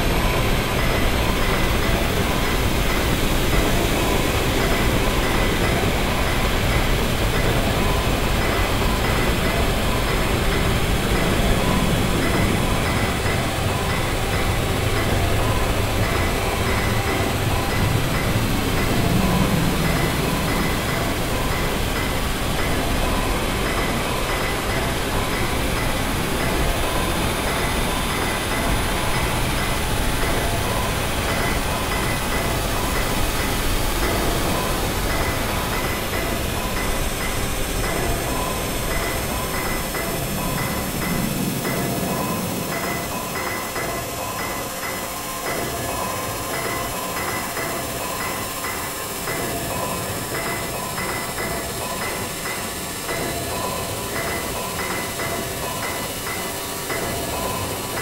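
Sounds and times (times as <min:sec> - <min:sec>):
low drone: 0:00.0 - 0:58.0.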